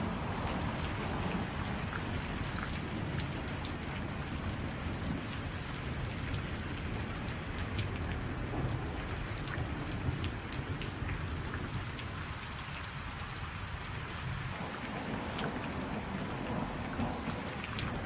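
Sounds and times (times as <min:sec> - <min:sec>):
steady rain: 0:00.0 - 0:18.0.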